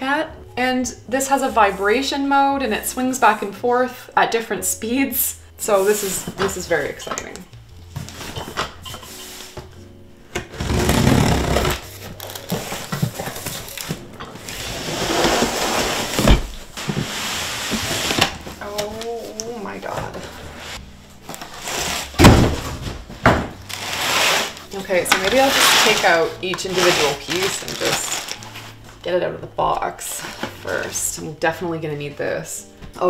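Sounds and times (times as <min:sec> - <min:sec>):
plastic wrapping rustling: 0:07.8 - 0:09.8, 0:10.4 - 0:29.1, 0:30.0 - 0:31.2
cardboard flaps scraping: 0:10.4 - 0:18.8, 0:20.1 - 0:28.8.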